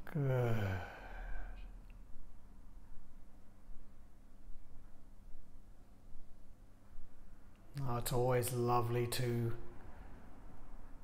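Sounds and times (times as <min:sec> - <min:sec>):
person sighing: 0:00.0 - 0:01.8.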